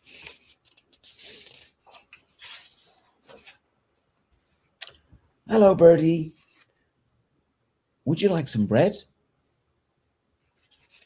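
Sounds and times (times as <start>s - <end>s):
book pages rustling: 0.0s - 4.4s, 6.3s - 6.9s, 10.4s - 11.0s.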